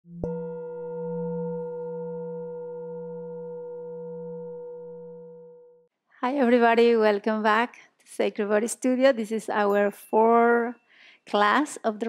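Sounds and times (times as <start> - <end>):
bell-like tone ringing: 0.1 - 5.8.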